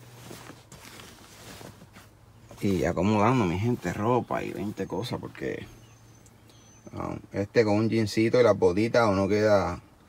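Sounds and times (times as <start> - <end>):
fabric rustling: 0.0 - 5.6.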